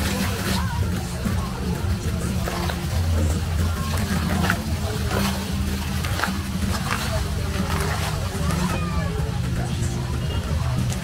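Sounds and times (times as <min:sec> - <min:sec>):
fountain water splashing: 0:00.0 - 0:11.0
people talking: 0:00.0 - 0:11.0
steady low rumble: 0:00.0 - 0:11.0.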